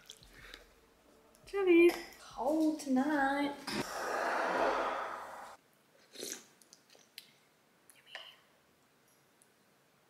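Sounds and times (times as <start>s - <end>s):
dense noise: 3.7s - 5.6s.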